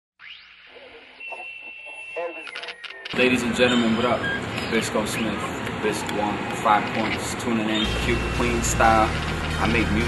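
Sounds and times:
high-pitched beep tone: 0:00.2 - 0:04.4.

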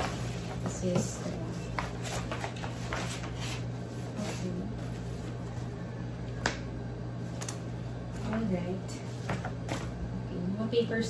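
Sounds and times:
paper shuffling: 0:00.0 - 0:05.8
steady low hum: 0:00.0 - 0:11.0.

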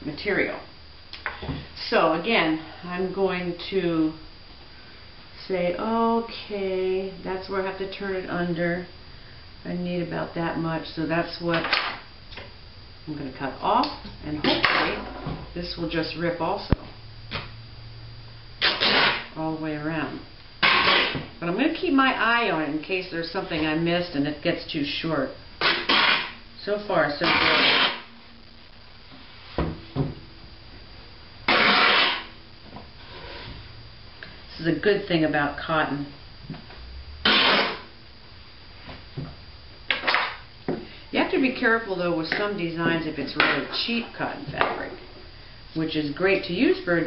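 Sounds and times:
fabric tearing: 0:18.6 - 0:19.3, 0:20.6 - 0:21.2, 0:25.6 - 0:26.4, 0:27.3 - 0:28.1, 0:31.5 - 0:32.3, 0:37.3 - 0:37.8.

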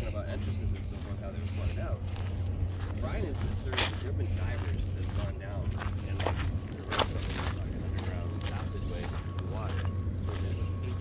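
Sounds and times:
footsteps crunching on gravel: 0:00.0 - 0:11.0
steady low rumble: 0:00.0 - 0:11.0.

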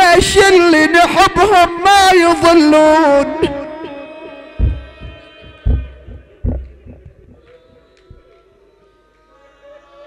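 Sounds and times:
loud deep thump: 0:04.6 - 0:07.4
faint knocks: 0:04.6 - 0:08.2.

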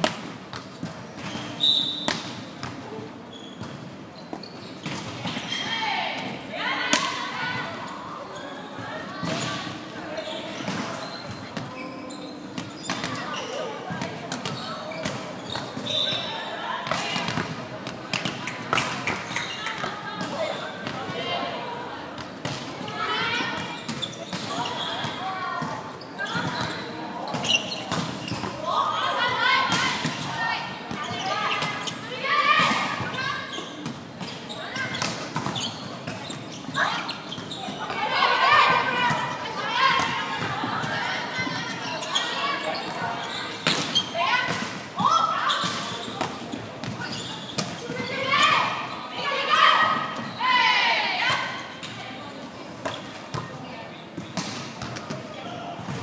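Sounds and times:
volleyball slaps echoing: 0:00.0 - 0:02.8
players' voices: 0:04.4 - 0:56.0.

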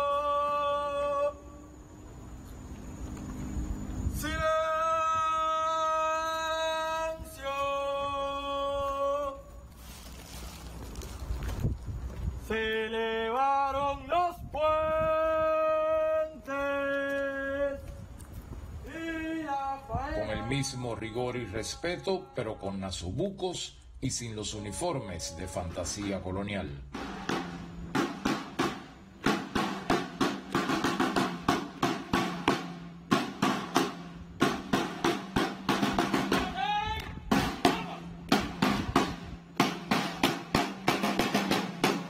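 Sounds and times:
man chanting long cries: 0:00.0 - 0:01.7, 0:04.1 - 0:09.5, 0:18.9 - 0:23.2, 0:24.0 - 0:26.7, 0:36.3 - 0:38.2
steady low hum: 0:00.0 - 0:42.0
boots marching on stone: 0:09.7 - 0:12.5.

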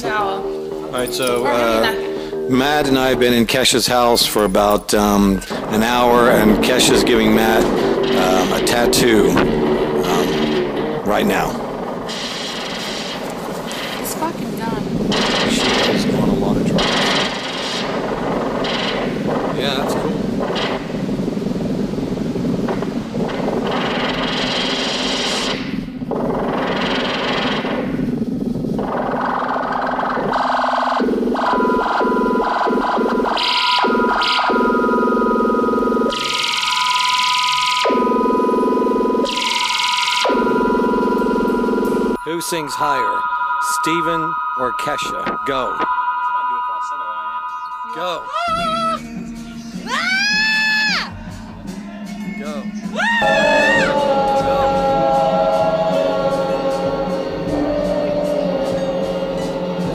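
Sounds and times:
electronic music: 0:00.0 - 0:59.9
steady high tones: 0:00.0 - 0:59.9
overlapping voices: 0:53.2 - 0:59.9.

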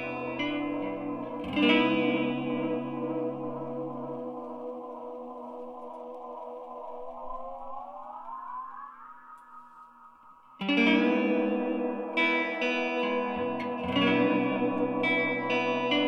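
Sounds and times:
strummed guitar chord: 0:00.0 - 0:04.5, 0:10.6 - 0:16.0
electric guitar with echo delay: 0:00.0 - 0:16.0.

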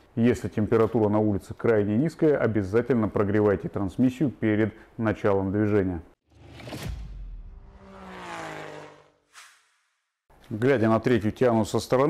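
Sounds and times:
short whoosh: 0:06.3 - 0:10.1
falling sweeping tone: 0:06.4 - 0:09.8.

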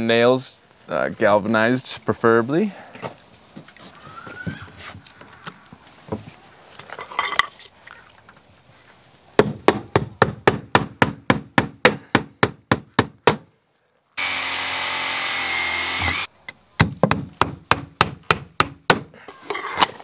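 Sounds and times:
power drill whine: 0:14.2 - 0:16.3
hammer driving nails: 0:14.2 - 0:19.1.

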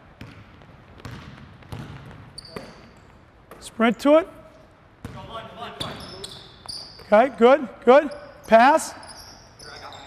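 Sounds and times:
basketball bouncing on wooden floor: 0:00.2 - 0:02.7, 0:05.0 - 0:05.3
short high squeak: 0:09.0 - 0:10.0.

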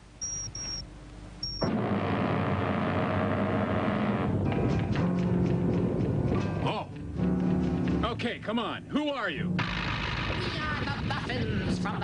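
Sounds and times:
high-pitched electronic beeps: 0:00.2 - 0:00.8, 0:01.4 - 0:01.7
loud noisy rumble: 0:01.6 - 0:06.4, 0:09.4 - 0:12.0.

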